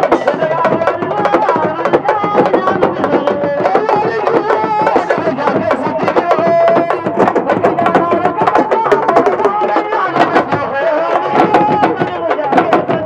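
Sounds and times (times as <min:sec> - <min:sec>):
drum ensemble fast rhythm: 0:00.0 - 0:13.0.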